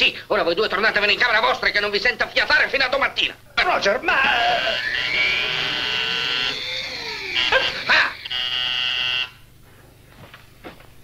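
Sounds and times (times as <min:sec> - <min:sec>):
electric buzzer: 0:04.4 - 0:09.5.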